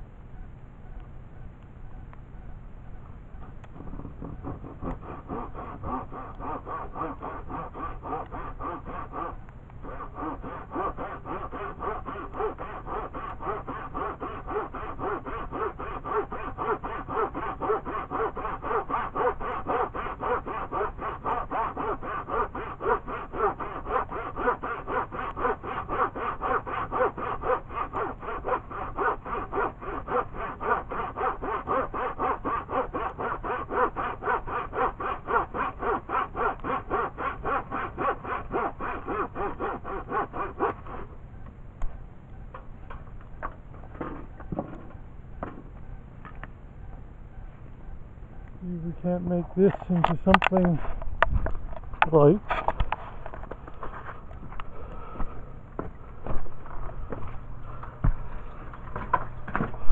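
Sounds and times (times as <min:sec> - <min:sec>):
handsaw cutting wood: 0:04.0 - 0:41.1, 0:49.2 - 0:50.8.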